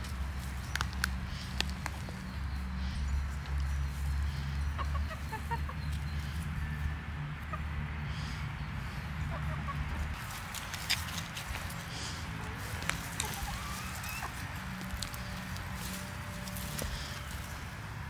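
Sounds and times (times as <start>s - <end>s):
hens clucking: 0.8s - 17.8s.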